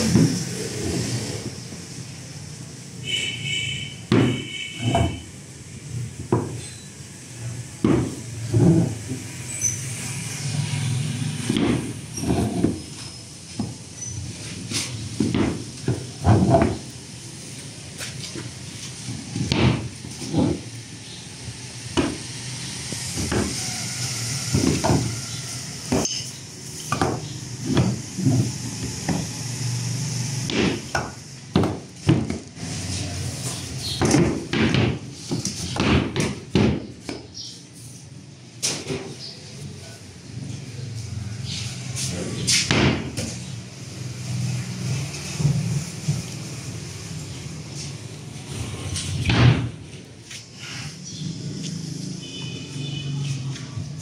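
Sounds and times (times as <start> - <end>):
sharp wooden knocks: 4.1 - 5.2, 7.8 - 8.9, 11.4 - 12.8, 15.2 - 16.9, 19.4 - 20.6, 26.9 - 29.3, 30.5 - 32.5, 34.0 - 37.3, 42.7 - 43.3.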